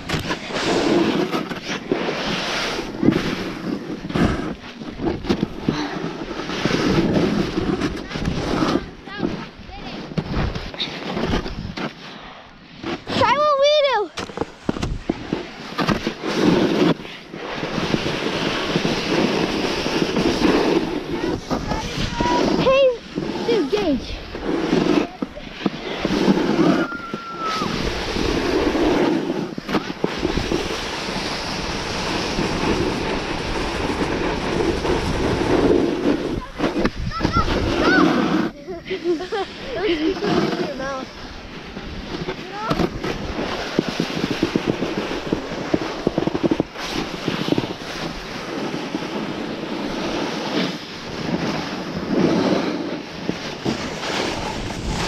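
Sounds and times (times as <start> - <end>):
snowboard scraping over snow: 0.0 - 55.0
wind buffeting microphone: 13.0 - 55.0.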